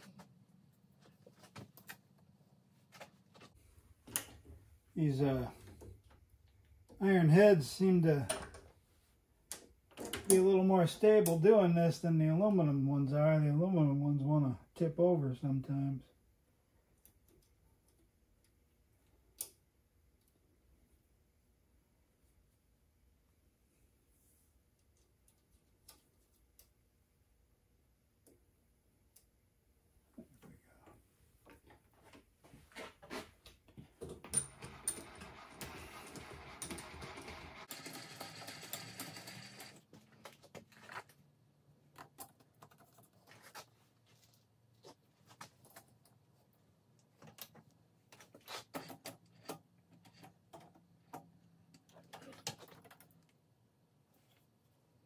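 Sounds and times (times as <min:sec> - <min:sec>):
metal parts rattling: 0:34.3 - 0:38.4.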